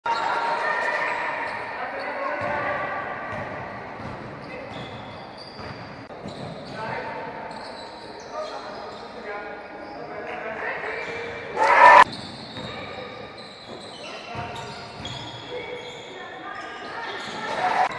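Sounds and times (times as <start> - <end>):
basketball bouncing on gym floor: 3.3 - 6.6
players' voices: 8.4 - 12.0.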